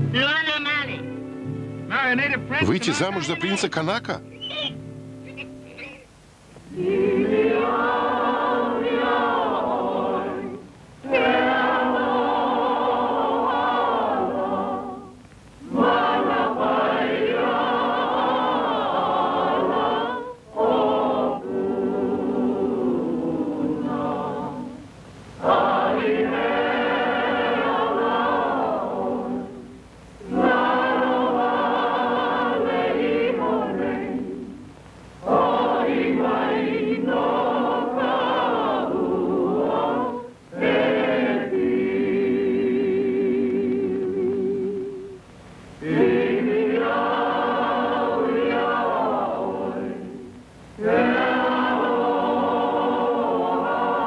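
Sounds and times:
choir singing: 0:06.7 - 0:45.2, 0:45.8 - 0:54.0.

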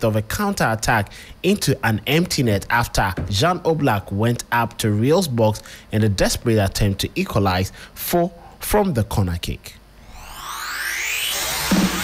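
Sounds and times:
rising electronic whoosh: 0:10.0 - 0:12.0.

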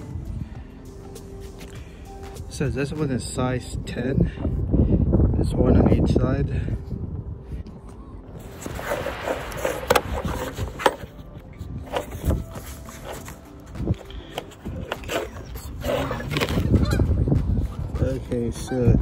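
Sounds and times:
squeaky scraping: 0:08.4 - 0:19.0.

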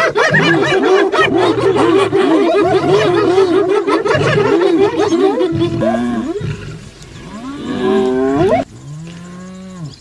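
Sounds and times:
moaning animal calls: 0:00.0 - 0:10.0.

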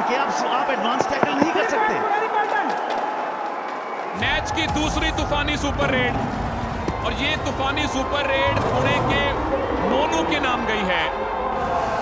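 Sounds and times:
arena crowd noise: 0:00.0 - 0:12.0
man commentating: 0:04.2 - 0:06.2.

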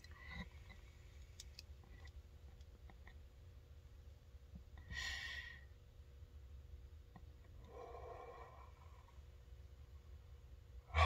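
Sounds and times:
person breathing: 0:07.6 - 0:09.2.

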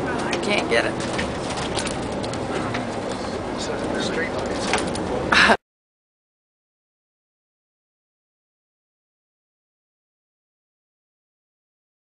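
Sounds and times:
bus engine and road noise: 0:00.0 - 0:05.6.

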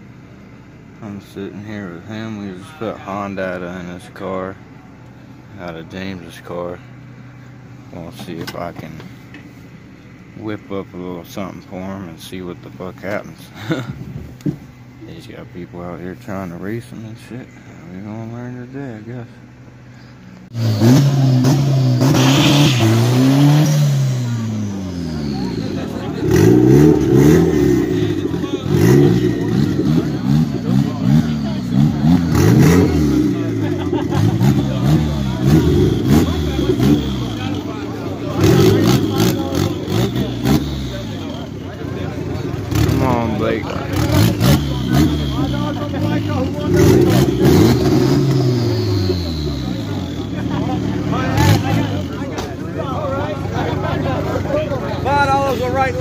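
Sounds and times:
car engines revving: 0:00.0 - 0:56.0.

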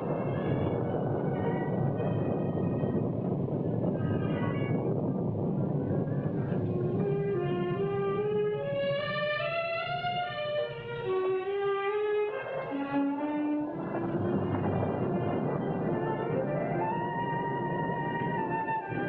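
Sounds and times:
orchestral suspense strings: 0:00.0 - 0:19.0.

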